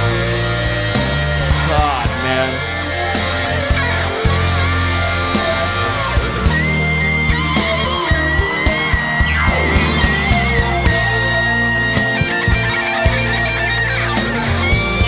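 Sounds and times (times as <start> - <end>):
live rock band: 0.0 - 15.0
electric guitar solo: 5.8 - 15.0.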